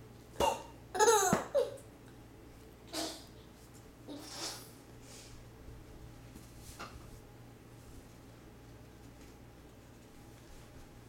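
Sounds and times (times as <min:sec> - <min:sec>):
toddler laughing: 0:01.0 - 0:01.8.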